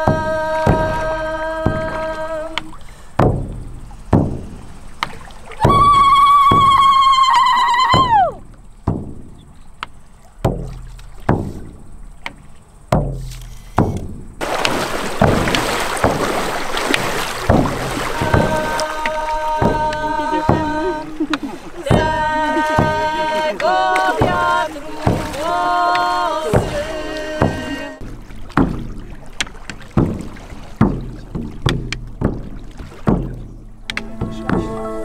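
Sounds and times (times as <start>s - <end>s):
frame drums beating: 0.0s - 2.6s, 3.2s - 9.6s, 10.4s - 11.8s, 12.9s - 35.0s
high held tone bending down: 17.6s - 28.1s, 33.2s - 35.0s.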